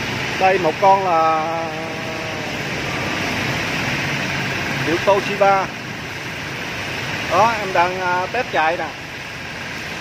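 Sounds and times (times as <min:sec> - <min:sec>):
air compressor running: 0:00.0 - 0:10.0.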